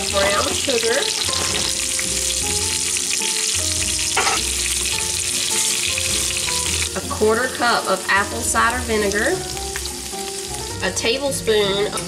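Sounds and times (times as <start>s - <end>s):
meat sizzling in oil: 0.0s - 12.0s.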